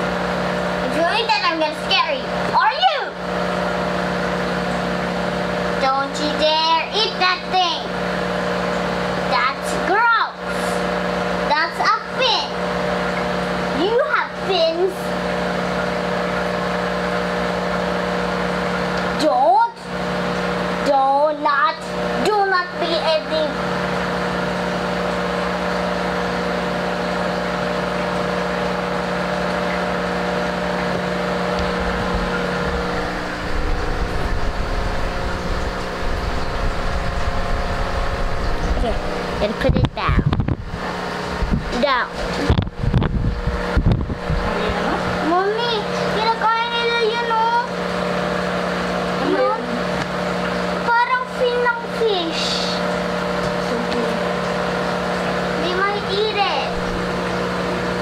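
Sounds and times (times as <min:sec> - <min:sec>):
mechanical hum: 0:00.0 - 0:58.0
low rumble: 0:31.6 - 0:41.8
person speaking: 0:38.6 - 0:40.4.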